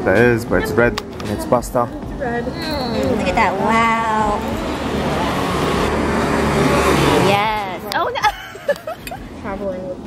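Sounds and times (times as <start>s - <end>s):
car engine rumble: 0.0s - 10.0s
road noise: 0.0s - 10.0s.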